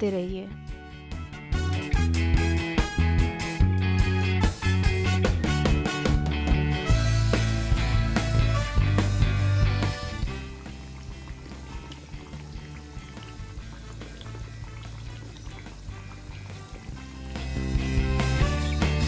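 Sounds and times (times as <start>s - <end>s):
background music: 0.0s - 19.0s
food sizzling in hot oil: 7.7s - 19.0s.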